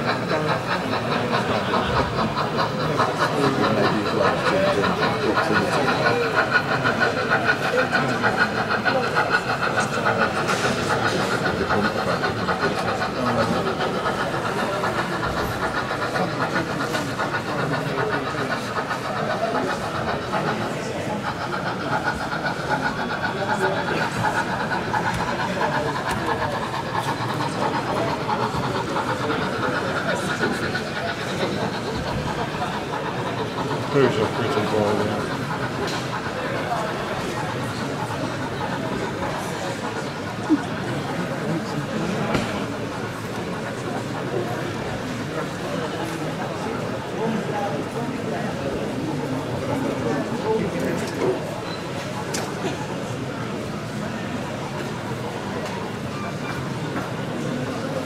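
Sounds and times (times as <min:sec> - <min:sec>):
crowd chatter: 0:00.0 - 0:58.0
model train rattling: 0:00.0 - 0:58.0.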